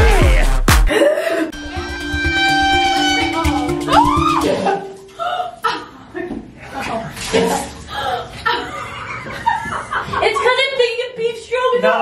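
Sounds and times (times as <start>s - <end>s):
people laughing: 6.7s - 10.7s.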